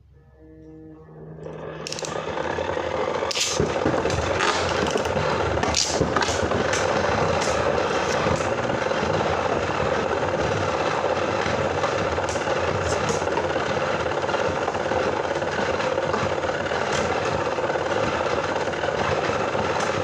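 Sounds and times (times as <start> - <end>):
spinning tops whirring: 1.4 - 20.0
spinning tops clacking: 1.8 - 2.5, 3.2 - 8.2.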